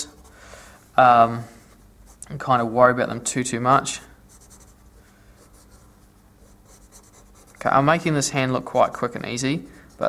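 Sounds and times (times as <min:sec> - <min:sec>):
low steady hum: 0:00.0 - 0:10.0
scratchy pencil drawing strokes: 0:03.9 - 0:08.0, 0:09.7 - 0:10.0.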